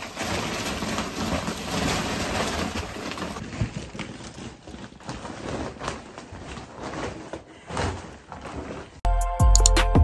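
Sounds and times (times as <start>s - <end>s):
plastic bag rustling and crinkling: 0.0s - 9.0s.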